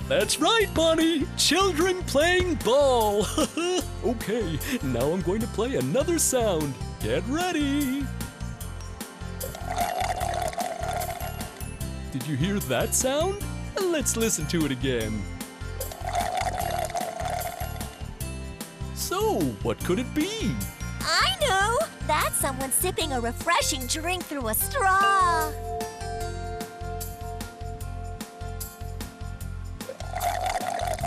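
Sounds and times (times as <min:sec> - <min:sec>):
children's music with steady beat: 0:00.0 - 0:31.0
slurping through a straw: 0:09.4 - 0:11.6, 0:15.8 - 0:18.0, 0:29.9 - 0:31.0
background music with steady beat: 0:24.7 - 0:31.0.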